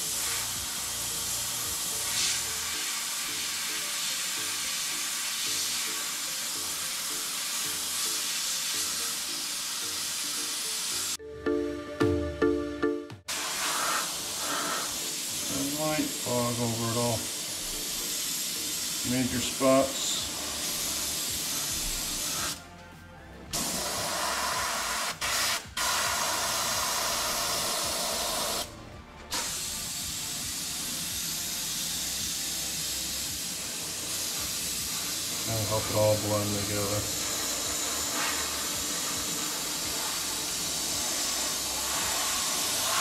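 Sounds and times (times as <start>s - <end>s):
airbrush spraying paint: 0.0s - 11.2s, 13.3s - 22.6s, 23.5s - 28.7s, 29.3s - 43.0s.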